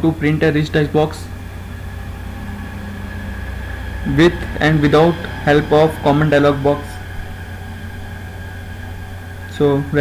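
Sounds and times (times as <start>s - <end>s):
background hum and hiss: 0.0s - 10.0s
faint high-pitched whine: 0.0s - 10.0s.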